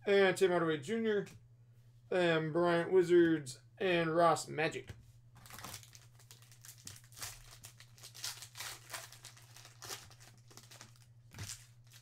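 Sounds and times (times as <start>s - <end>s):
foil wrapper crinkling and tearing: 5.4s - 12.0s.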